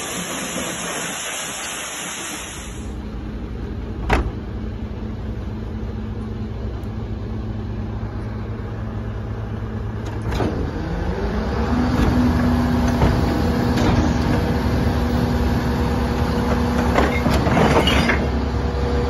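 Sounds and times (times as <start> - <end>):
truck engine humming: 0.0 - 17.6.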